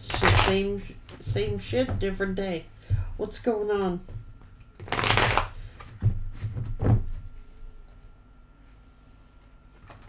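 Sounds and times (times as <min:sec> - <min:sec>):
cards being shuffled by hand: 0:00.0 - 0:01.2, 0:04.8 - 0:06.6.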